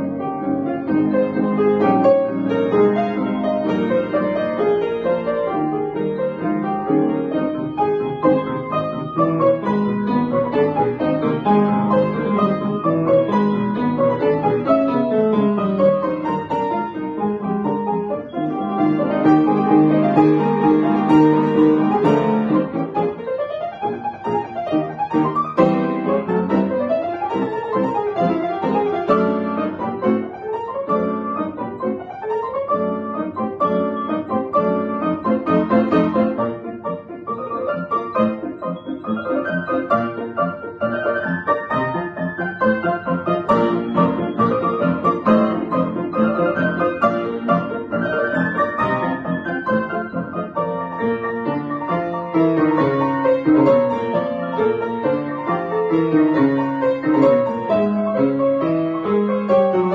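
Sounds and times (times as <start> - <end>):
upright piano classical piece: 0.0 - 59.9.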